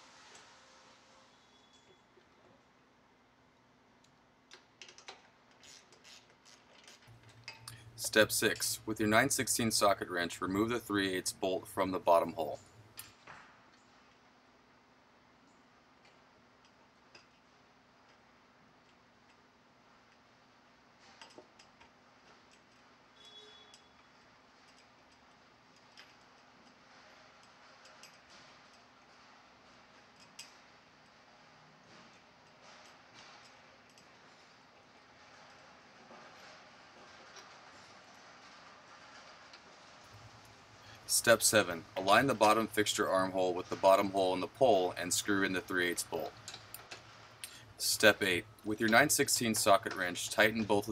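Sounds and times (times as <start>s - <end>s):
low steady room hum: 0.0s - 50.9s
faint metallic clicks and ticks: 4.0s - 9.0s.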